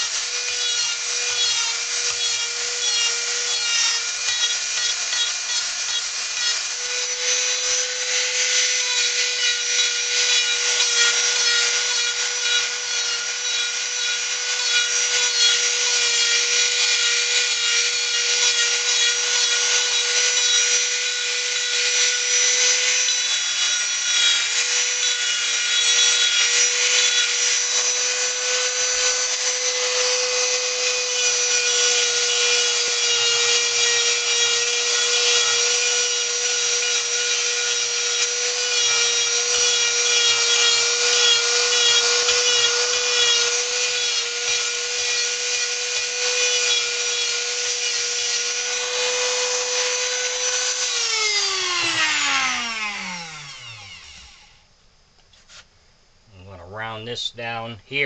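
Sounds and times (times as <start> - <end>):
rotary tool grinding wood: 0.0 - 54.6.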